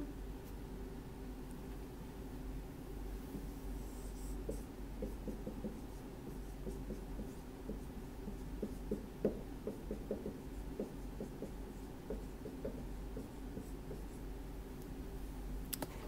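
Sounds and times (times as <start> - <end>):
low steady hum: 0.0 - 16.0
marker writing on whiteboard: 3.4 - 14.2.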